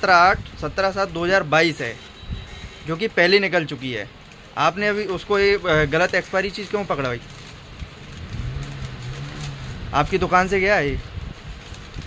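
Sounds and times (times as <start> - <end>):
man speaking: 0.0 - 2.0, 2.9 - 7.2, 9.9 - 11.0
faint background noise: 0.0 - 12.0.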